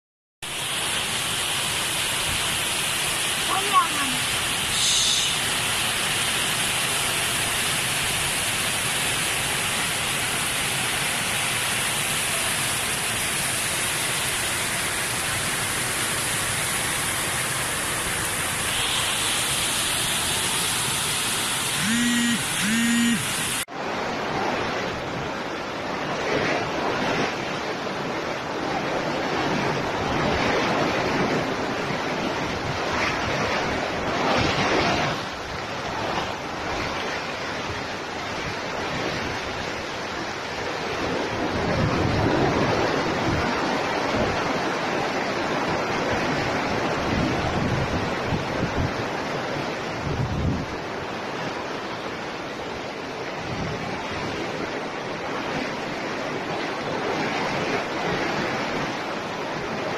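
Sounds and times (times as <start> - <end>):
heavy rain: 0.4 - 26.1
short pitched beeps: 21.8 - 23.6
storm wind: 23.2 - 59.9.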